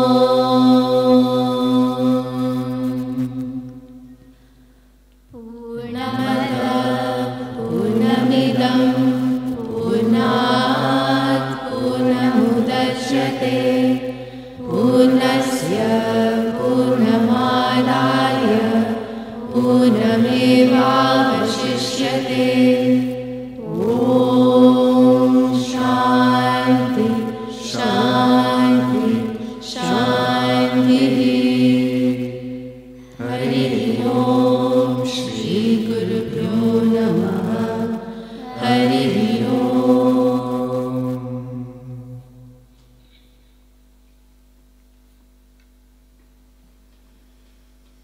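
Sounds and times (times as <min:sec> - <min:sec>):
held drone: 0:00.0 - 0:04.1, 0:05.3 - 0:42.5
voices chanting a melody: 0:05.4 - 0:42.0.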